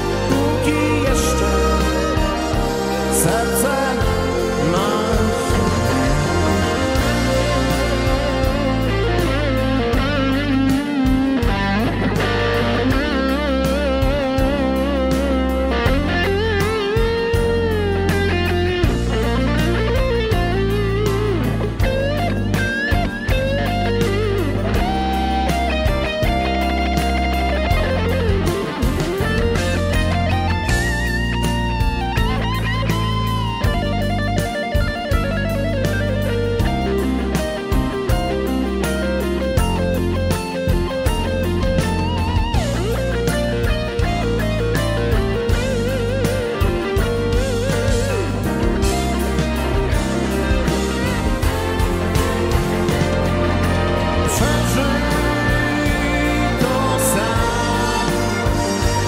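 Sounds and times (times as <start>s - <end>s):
bass and drums: 0.0s - 59.0s
electric guitar lead melody: 0.0s - 59.0s.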